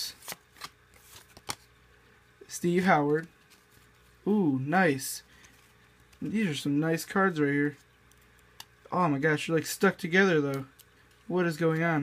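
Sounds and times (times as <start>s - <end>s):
trading cards flipped: 0.1s - 1.7s.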